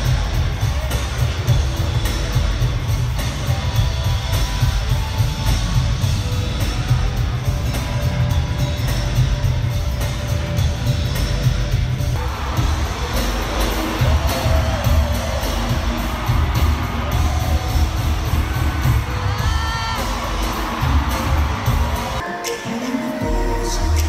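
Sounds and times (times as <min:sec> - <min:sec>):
crowd cheering: 0:00.0 - 0:24.0
heavy bass beat: 0:00.0 - 0:24.0
person singing: 0:18.9 - 0:24.0.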